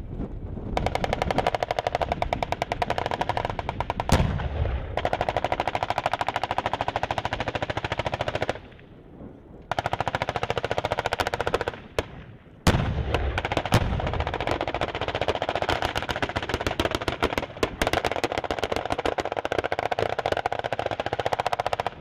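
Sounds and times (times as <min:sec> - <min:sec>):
heavy shot with low boom: 0:03.7 - 0:05.3, 0:11.8 - 0:14.6.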